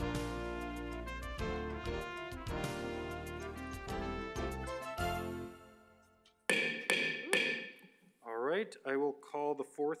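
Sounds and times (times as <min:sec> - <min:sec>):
gavel knocks: 0:06.5 - 0:08.0.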